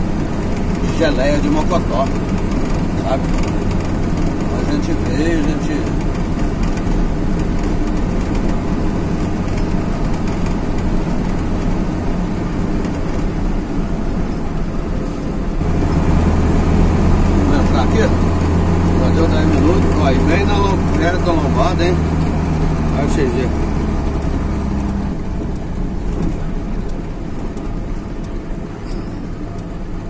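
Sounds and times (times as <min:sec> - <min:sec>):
vehicle engine and road noise: 0:00.0 - 0:30.0.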